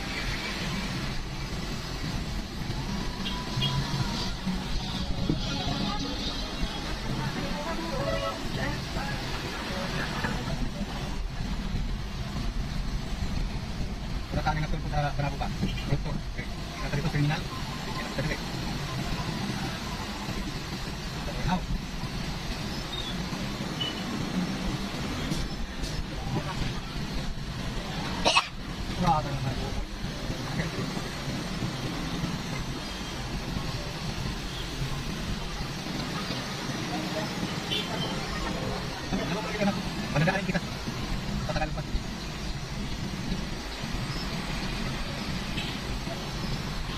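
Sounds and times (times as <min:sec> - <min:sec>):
car engine and road rumble: 0:00.0 - 0:46.9
voices: 0:00.0 - 0:46.9.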